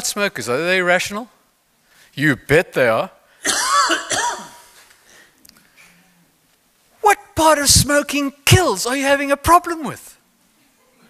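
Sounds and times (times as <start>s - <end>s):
man coughing: 3.4s - 4.8s.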